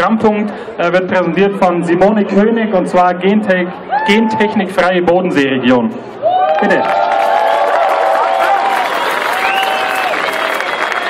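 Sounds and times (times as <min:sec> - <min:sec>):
crowd applauding: 0:06.2 - 0:11.0.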